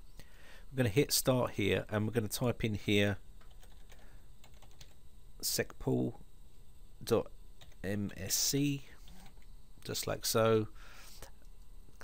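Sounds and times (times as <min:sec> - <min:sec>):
computer keyboard typing: 0:03.4 - 0:05.0.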